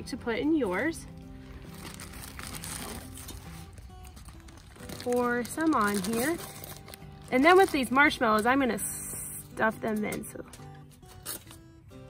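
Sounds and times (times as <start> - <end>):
background music: 0.0 - 12.0
plastic bag crinkling: 0.7 - 8.6.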